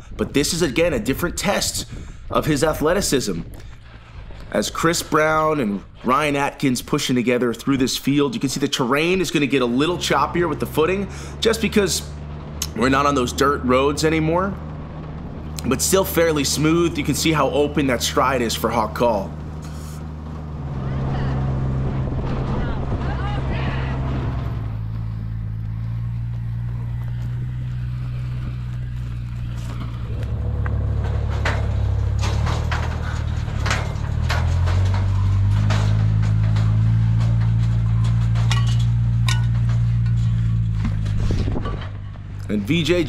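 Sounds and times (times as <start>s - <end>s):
vehicle engine drone: 0.0s - 43.0s
faint voices: 20.7s - 24.3s
sharp clicks and knocks: 24.5s - 42.5s.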